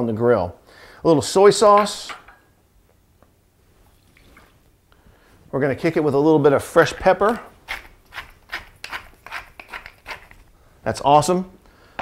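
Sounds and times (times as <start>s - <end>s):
pepper mill grinding: 7.2s - 10.5s.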